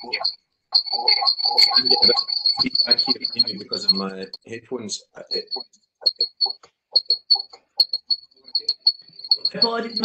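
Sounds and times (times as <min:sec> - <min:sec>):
high-pitched feedback whistle: 0:00.9 - 0:04.4, 0:07.9 - 0:10.0
person speaking: 0:01.6 - 0:05.6, 0:09.4 - 0:10.0.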